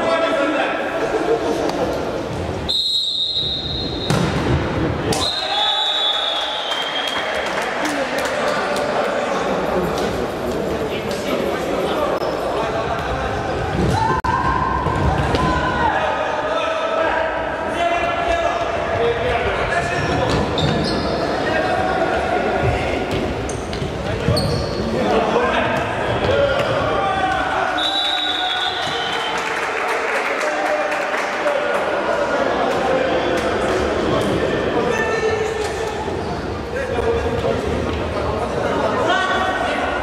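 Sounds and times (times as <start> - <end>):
referee's whistle blast: 2.7 - 4.3, 5.1 - 7.3, 27.7 - 29.3.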